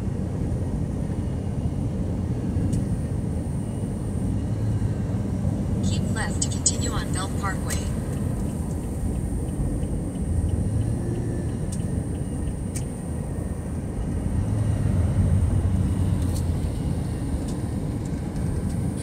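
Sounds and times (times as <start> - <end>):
car cabin road rumble: 0.0 - 19.0.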